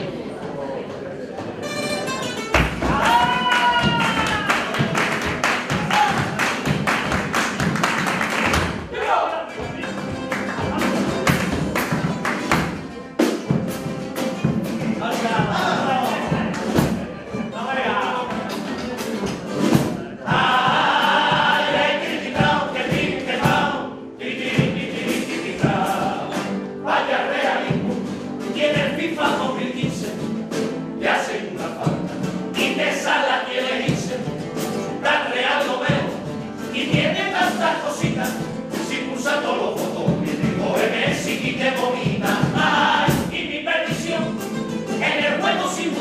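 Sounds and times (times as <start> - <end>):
strummed guitars: 1.3 - 46.0
bass drum: 2.6 - 8.9, 19.6 - 23.8, 39.8 - 44.4
group clapping hands: 2.6 - 8.9, 9.8 - 12.9
male choir singing in harmony: 15.0 - 18.8, 20.1 - 46.0.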